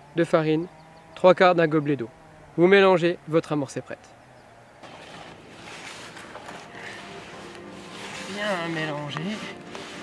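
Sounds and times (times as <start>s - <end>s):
hands mixing groundbait in bucket: 4.8s - 10.0s.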